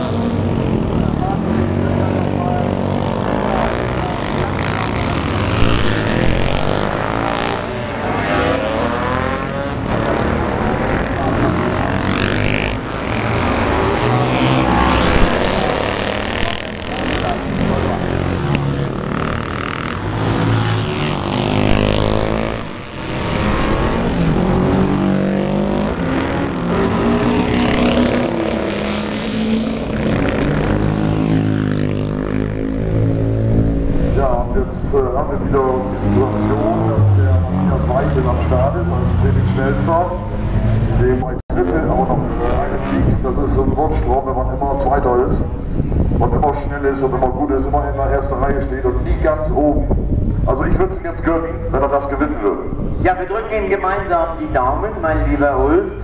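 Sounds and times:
racing motorcycles passing at speed: 0.0 - 56.0.

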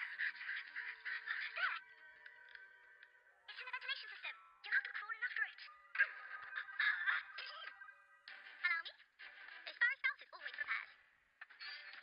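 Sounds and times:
cartoon music and effects: 0.0 - 12.0.

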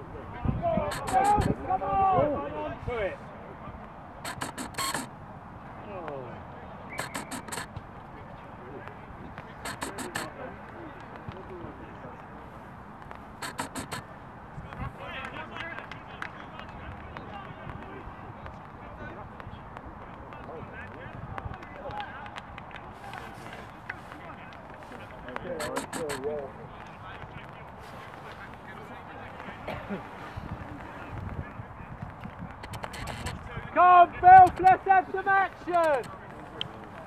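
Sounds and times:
distant voices calling: 0.8 - 1.8, 4.2 - 5.2, 6.9 - 8.2, 9.2 - 11.3, 13.0 - 15.0, 24.8 - 26.6, 32.5 - 37.0
quick sharp clicks: 0.9 - 1.6, 4.2 - 5.1, 6.9 - 7.8, 9.6 - 10.3, 13.1 - 14.0, 25.3 - 26.3, 32.5 - 33.4, 35.6 - 36.2.

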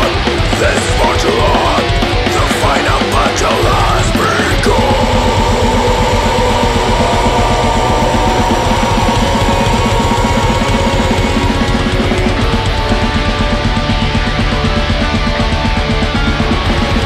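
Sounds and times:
held vocal melody: 0.0 - 12.5
metal band playing: 0.0 - 17.0
vocal shout: 3.2 - 12.2.

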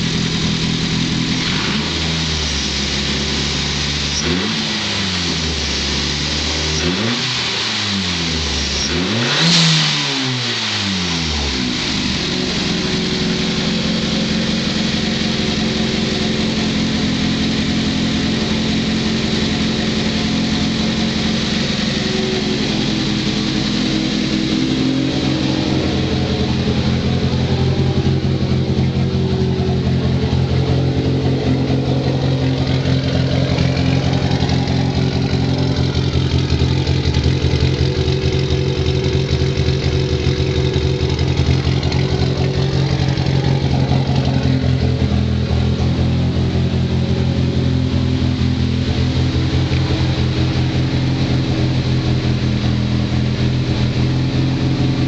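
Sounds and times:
turbocharged car engine idling: 0.0 - 55.0.

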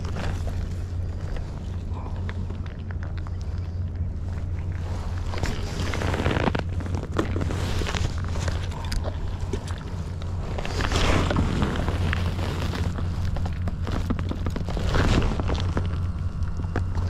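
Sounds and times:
fishing tackle clicks and rustles: 0.0 - 17.0.

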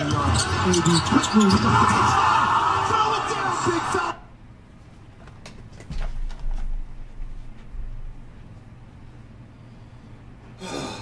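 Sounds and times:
basketball bouncing on court: 0.0 - 2.1
commentator speaking: 0.0 - 4.2
arena crowd noise: 0.0 - 4.3.

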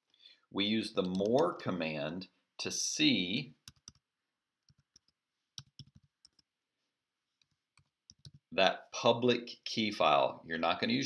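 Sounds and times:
typing on computer keyboard: 3.7 - 4.0, 4.6 - 6.5, 7.8 - 8.5.

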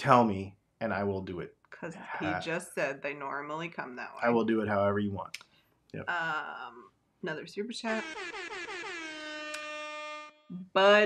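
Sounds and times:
horn-like alert tone gliding down: 7.9 - 10.4.

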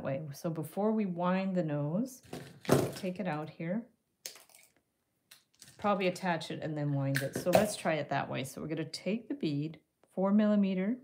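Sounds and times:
woman speaking: 0.0 - 2.2, 3.0 - 3.9, 5.8 - 11.0.

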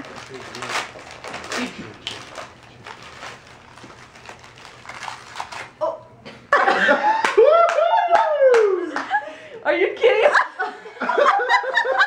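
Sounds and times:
wrapping paper rustling and tearing: 0.0 - 5.8.

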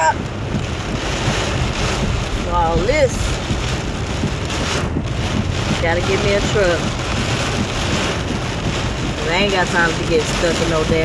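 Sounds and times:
car rumbling on wet road: 0.0 - 11.0
heavy rain on car windshield: 0.0 - 11.0.

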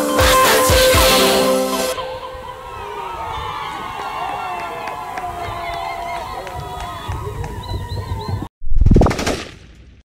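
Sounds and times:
crowd voices: 2.0 - 8.2.

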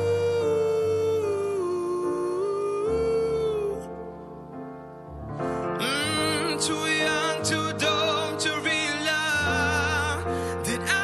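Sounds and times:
man singing ooh: 0.0 - 4.4, 5.7 - 11.0
soft piano accompaniment: 0.0 - 11.0.

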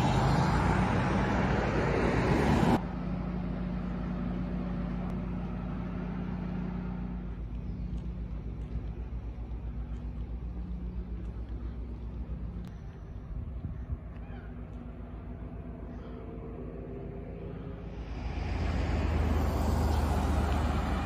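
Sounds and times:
pickup truck driving past: 0.0 - 7.3, 16.7 - 21.0
low engine-like hum: 0.0 - 21.0.

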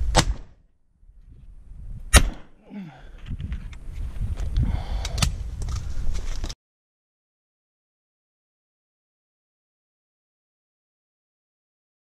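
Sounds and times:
shotgun shots: 2.1 - 2.6.

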